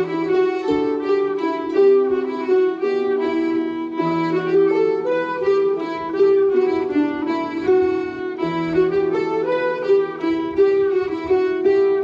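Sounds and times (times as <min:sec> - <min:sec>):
folk ensemble playing: 0:00.0 - 0:12.0.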